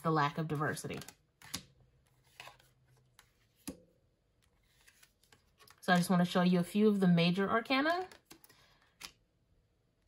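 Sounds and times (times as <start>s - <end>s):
cards being handled: 0.3s - 6.1s, 7.9s - 9.3s.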